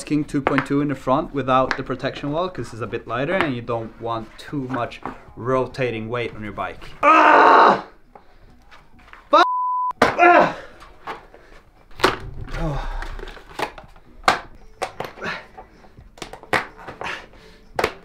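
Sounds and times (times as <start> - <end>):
censor bleep: 9.4 - 10.0.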